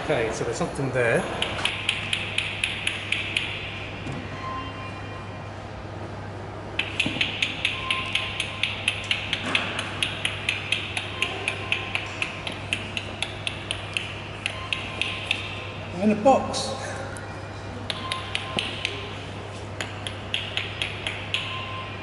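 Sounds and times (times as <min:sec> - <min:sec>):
person making sharp mouth clicks: 0:01.2 - 0:03.8, 0:06.8 - 0:15.6, 0:17.8 - 0:21.6.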